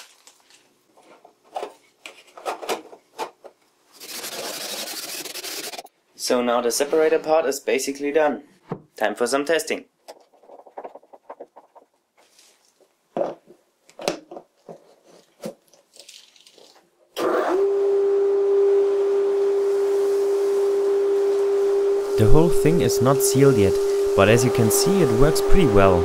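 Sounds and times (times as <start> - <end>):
hose knocking and scraping: 10.1 - 13.5
vacuum motor running: 17.2 - 26.0.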